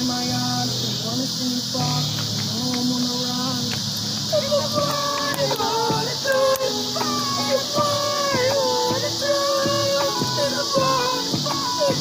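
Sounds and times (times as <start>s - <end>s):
faint held music tones: 0.0s - 12.0s
high-pitched insect buzz: 0.0s - 12.0s.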